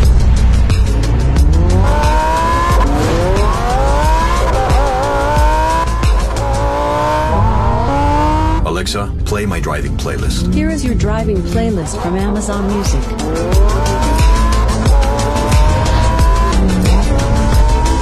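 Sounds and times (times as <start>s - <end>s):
car engine revving: 0.0s - 18.0s
music: 0.0s - 18.0s.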